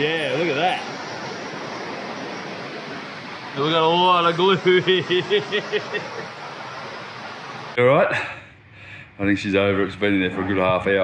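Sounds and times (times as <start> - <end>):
steady background hiss: 0.0 - 11.0
person laughing: 4.6 - 6.4.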